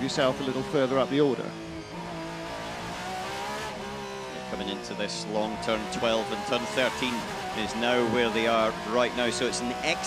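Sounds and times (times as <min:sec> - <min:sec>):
race car engine accelerating: 0:00.0 - 0:10.0.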